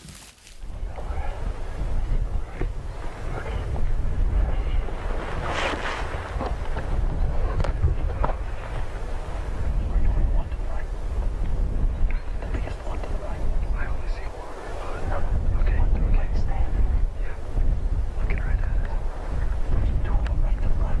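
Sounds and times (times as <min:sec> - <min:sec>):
wind buffeting microphone: 0:00.5 - 0:21.0.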